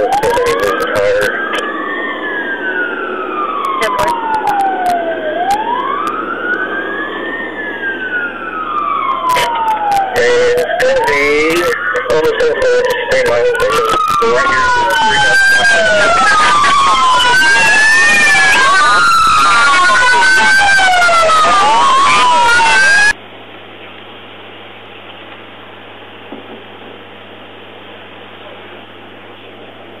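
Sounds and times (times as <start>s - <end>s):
police sirens wailing: 0.0s - 23.2s.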